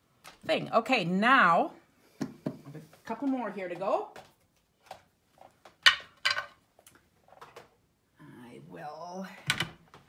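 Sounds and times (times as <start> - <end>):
objects set down on wooden table: 5.7 - 6.6.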